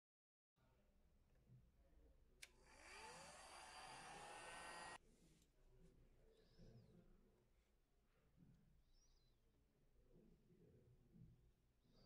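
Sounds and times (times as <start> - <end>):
heat gun fan blowing: 2.7 - 5.0.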